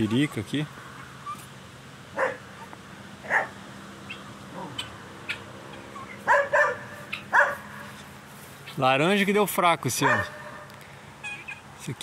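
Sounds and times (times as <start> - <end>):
dog barking: 2.2 - 2.5, 3.2 - 3.6, 6.2 - 7.9, 10.0 - 10.7.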